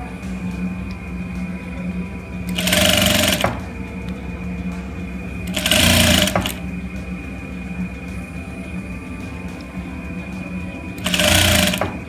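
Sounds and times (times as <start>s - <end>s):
sewing machine stitching: 2.5s - 3.7s, 5.5s - 6.6s, 11.0s - 12.0s.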